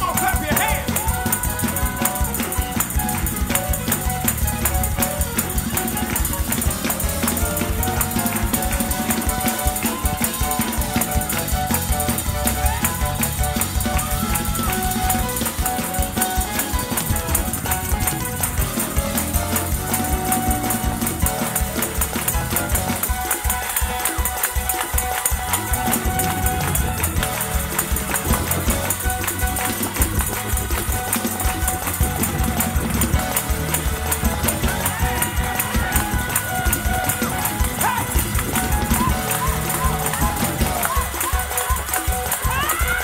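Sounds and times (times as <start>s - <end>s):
electric bass guitar: 0.0s - 23.1s, 25.4s - 41.2s
choir clapping along: 0.0s - 43.0s
drums: 0.0s - 43.0s
organ and keys: 0.0s - 43.0s.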